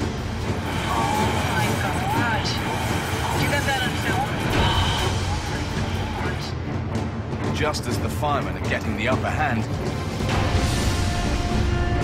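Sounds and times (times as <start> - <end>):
background music: 0.0 - 12.0
people shouting: 0.6 - 6.5.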